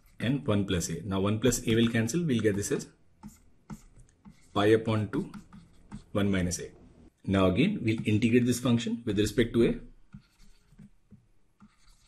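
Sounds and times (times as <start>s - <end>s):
stylus scratching and tapping tablet: 0.0s - 0.5s, 1.5s - 6.8s, 7.8s - 8.6s, 10.0s - 12.0s.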